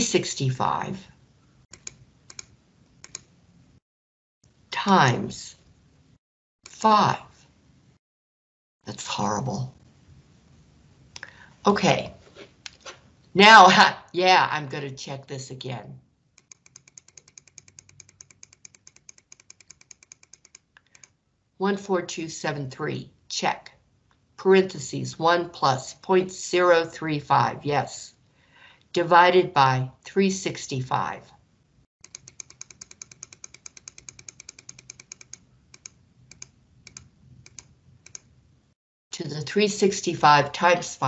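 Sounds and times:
computer key tapping: 1.7 - 3.3, 16.4 - 21.1, 32.0 - 38.3
keyboard typing: 1.7 - 3.3, 16.4 - 21.1, 32.0 - 38.3.

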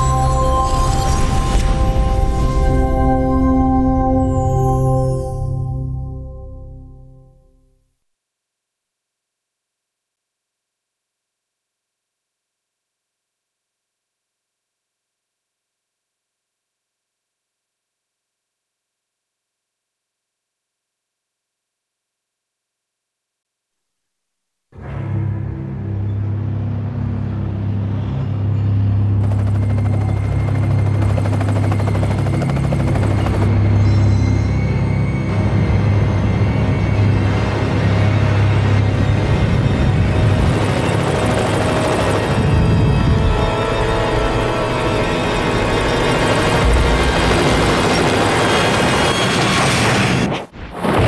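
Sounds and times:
low steady drone: 0.0 - 7.7, 24.8 - 47.9
helicopter rotor chopping: 29.0 - 33.8, 37.3 - 50.3.

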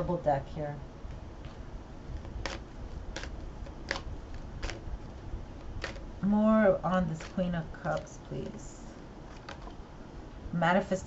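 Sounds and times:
low room noise: 0.0 - 11.0
playing cards shuffling: 2.2 - 4.9, 5.6 - 6.1.

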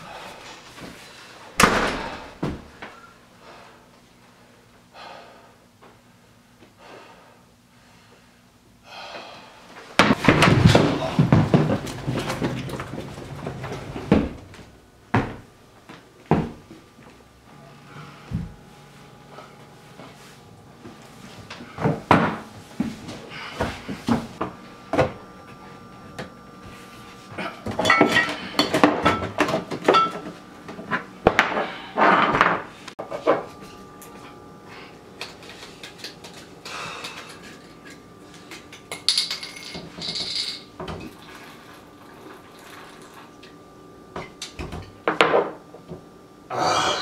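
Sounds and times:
body bumping against a wall: 15.1 - 15.4, 16.3 - 16.6.

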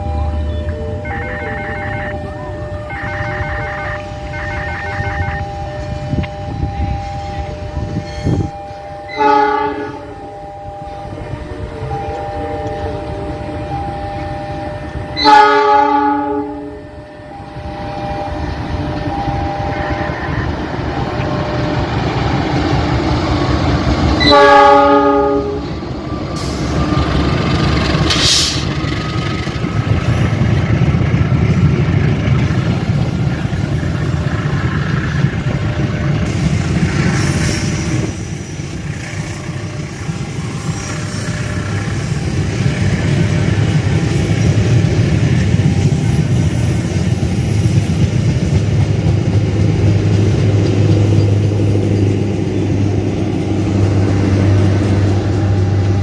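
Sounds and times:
train rumbling past: 0.0 - 56.0
locomotive horn blasts: 0.3 - 17.1, 18.9 - 20.6, 24.2 - 25.8.

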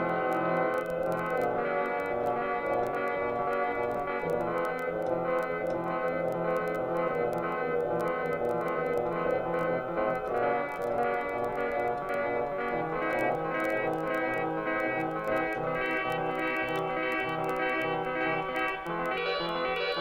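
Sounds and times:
keyboard playing dull chord: 0.0 - 20.0
light glitch clicks: 0.1 - 20.0.

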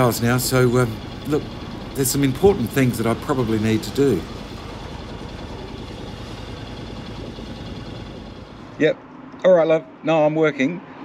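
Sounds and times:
man speaking: 0.0 - 4.3
freight train rolling past: 0.0 - 8.9.

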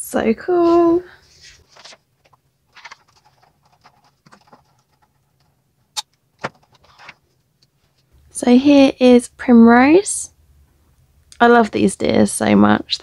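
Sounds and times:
plastic packaging rustling: 0.8 - 5.6, 6.3 - 7.4.

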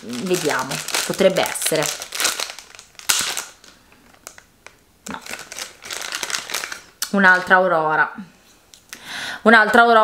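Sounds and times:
foil wrapper crinkling: 0.0 - 7.6.

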